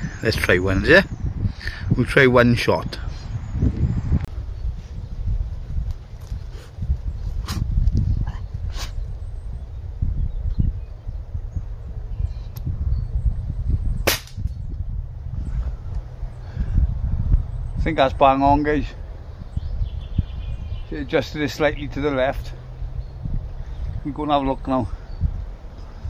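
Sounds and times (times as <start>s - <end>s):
steady low rumble: 0.0s - 26.0s
air rifle crack: 14.0s - 14.6s.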